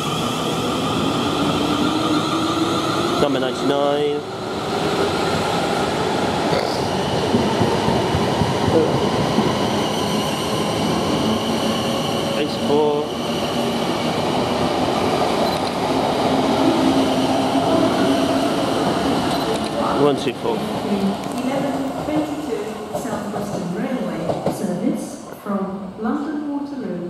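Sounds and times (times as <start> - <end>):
train wheels rumbling on rails: 0.0 - 25.1.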